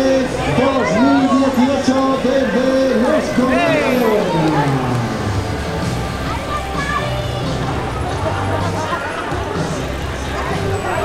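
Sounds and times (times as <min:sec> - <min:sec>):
crowd noise: 0:00.0 - 0:11.0
music: 0:00.0 - 0:11.0.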